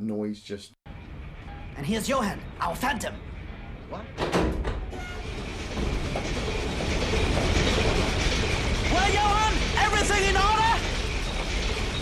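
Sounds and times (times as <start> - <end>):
clattering diesel engines: 0.9 - 12.0.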